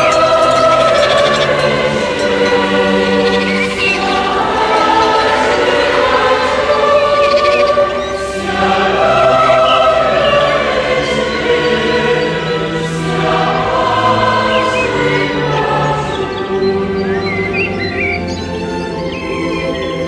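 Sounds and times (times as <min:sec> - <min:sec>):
choir singing sustained chords: 0:00.0 - 0:20.0.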